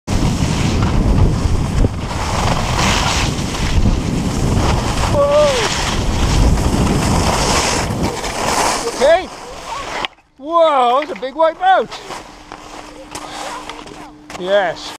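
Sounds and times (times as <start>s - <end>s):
wind buffeting microphone: 0.1s - 9.7s
skis scraping over snow: 0.1s - 14.9s
person calling out: 5.1s - 5.7s.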